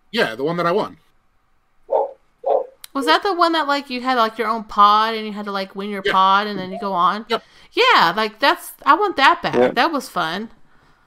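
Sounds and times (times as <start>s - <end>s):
person talking: 2.9s - 3.3s, 6.0s - 7.4s, 9.5s - 9.8s
short vocal sounds: 9.5s - 9.8s.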